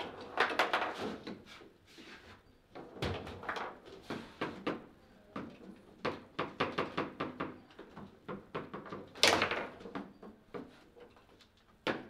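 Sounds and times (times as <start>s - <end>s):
ball knocking plastic figures: 0.1s - 1.0s.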